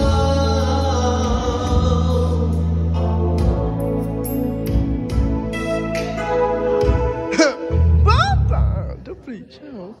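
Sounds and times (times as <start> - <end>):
keyboard band music with heavy bass: 0.0 - 9.2.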